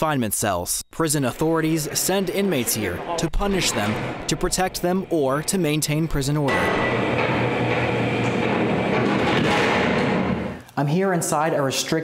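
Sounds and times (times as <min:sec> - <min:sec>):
mechanical rumble of door operator: 0:01.4 - 0:10.6
cell door swinging open: 0:02.0 - 0:10.6.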